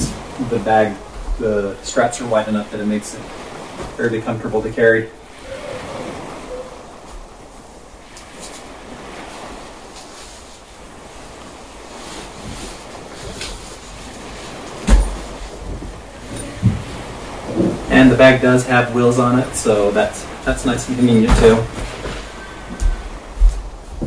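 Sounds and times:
heavy bag thump: 0:14.8 - 0:15.4.

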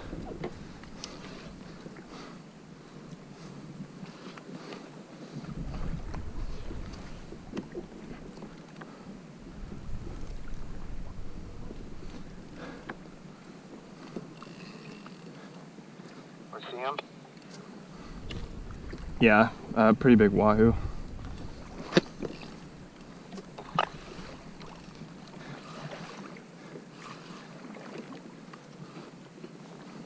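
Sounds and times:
water lapping at a kayak: 0:00.0 - 0:30.0
wind buffeting microphone: 0:05.3 - 0:08.6, 0:09.3 - 0:14.0, 0:17.9 - 0:25.2.

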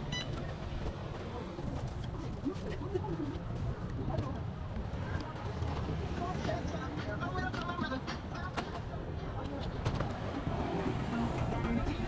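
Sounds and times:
city street rumble: 0:00.0 - 0:12.0.

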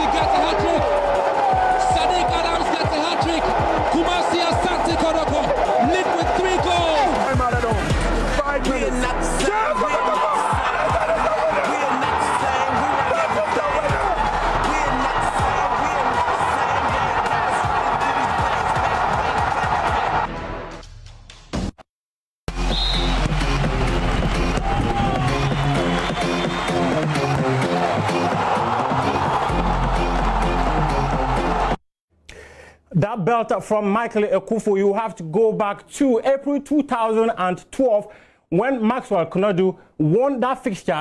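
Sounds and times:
stadium crowd noise: 0:00.0 - 0:20.4, 0:22.5 - 0:31.8
music with repeating bass line: 0:10.5 - 0:20.2, 0:22.5 - 0:31.8.

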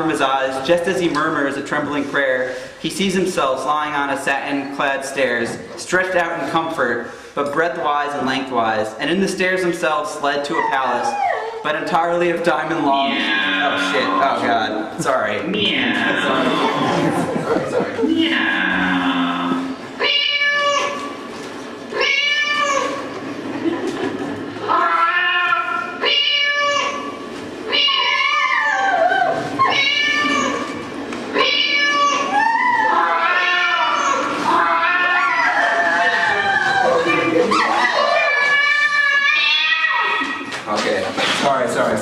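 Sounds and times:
drawn-out meow-like calls: 0:13.0 - 0:14.3, 0:18.2 - 0:21.1, 0:22.0 - 0:23.1, 0:24.7 - 0:27.1, 0:27.7 - 0:30.8, 0:31.4 - 0:40.4.

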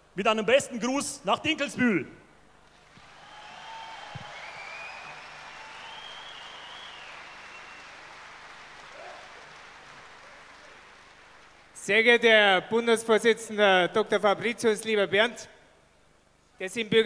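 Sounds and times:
crowd applauding: 0:02.7 - 0:11.8.

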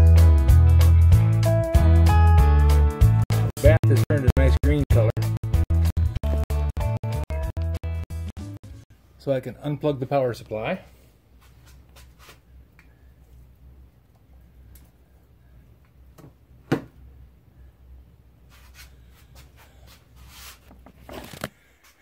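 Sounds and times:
low steady hum: 0:08.9 - 0:21.0
rustling: 0:18.5 - 0:22.0.

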